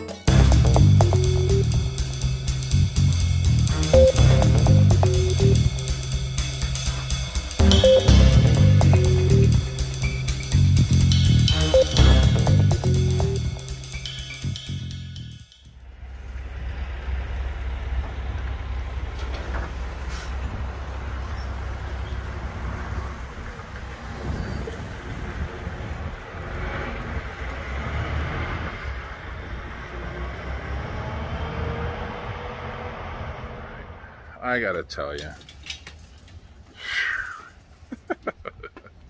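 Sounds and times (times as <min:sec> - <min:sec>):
music with drums: 0:00.0 - 0:15.5
diesel truck engine rumble: 0:00.3 - 0:14.6, 0:15.8 - 0:36.6.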